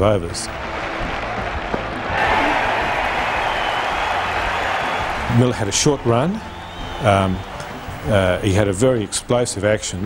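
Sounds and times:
crowd applauding and cheering: 0.5s - 8.5s.

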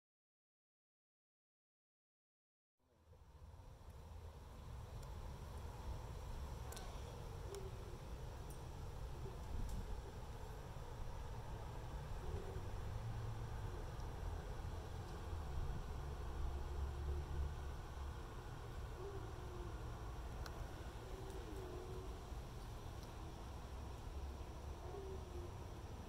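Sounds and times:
steady low rumble: 3.0s - 26.0s
dove cooing: 6.6s - 26.0s.

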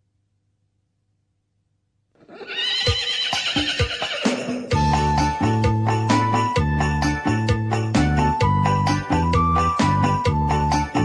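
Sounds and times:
horse whinny sound effect: 2.2s - 4.8s.

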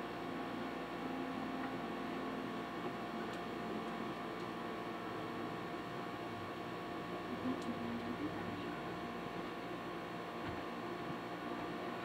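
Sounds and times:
hiss and hum from television speaker: 0.0s - 12.0s.

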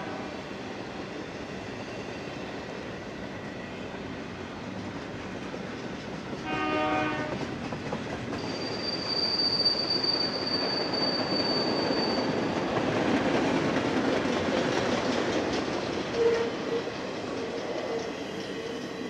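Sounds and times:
train horn blast: 0.0s - 0.4s, 6.4s - 7.4s, 16.2s - 16.9s
freight train rumble and clatter: 0.0s - 19.0s
high wheel squeal: 8.4s - 12.5s.

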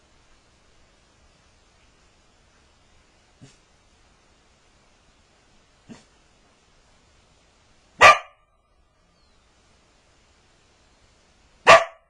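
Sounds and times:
dog barking: 8.0s - 8.4s, 11.6s - 12.0s.

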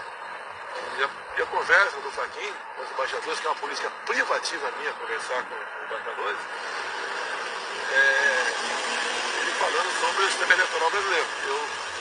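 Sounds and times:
steady noisy background: 0.0s - 12.0s.

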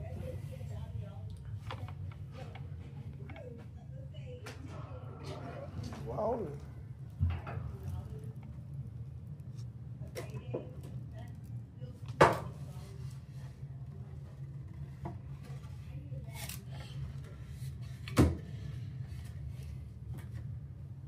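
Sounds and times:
steady low hum: 0.0s - 21.0s.

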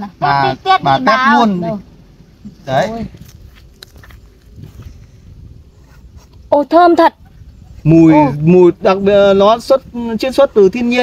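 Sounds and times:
faint rustles: 2.2s - 8.0s.

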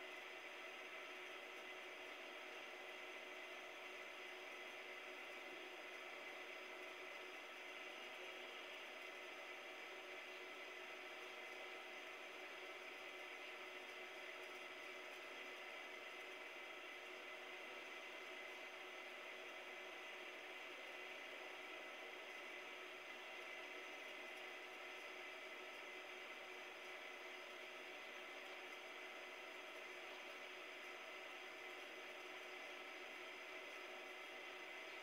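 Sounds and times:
faint steady hiss: 0.0s - 35.0s.

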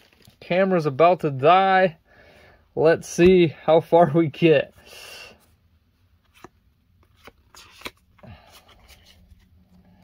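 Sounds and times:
trading cards rustling in hands: 5.5s - 10.0s.

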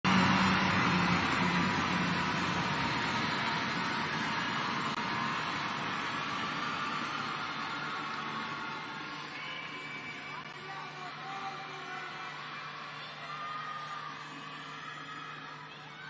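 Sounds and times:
crowd clapping: 0.0s - 16.0s
crowd voices: 0.0s - 16.0s.

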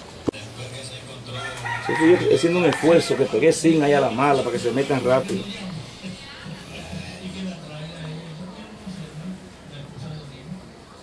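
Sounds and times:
rooster crowing: 1.3s - 3.7s.

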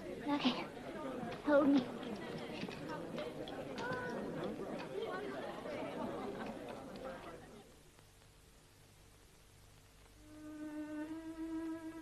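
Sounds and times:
indistinct chatter of voices: 0.0s - 7.8s.

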